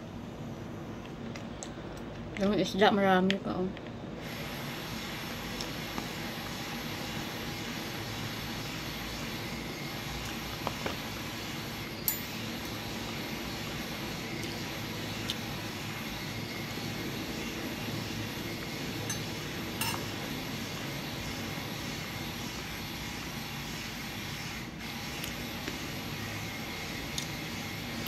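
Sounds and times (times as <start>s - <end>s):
spoon and fork clinking on container: 19.1s - 20.1s.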